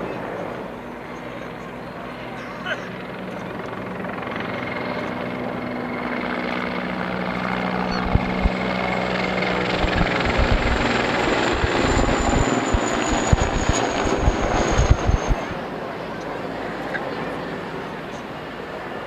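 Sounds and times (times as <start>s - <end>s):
helicopter flying overhead: 0.0s - 19.0s
low irregular thuds: 7.9s - 8.7s, 9.6s - 15.6s.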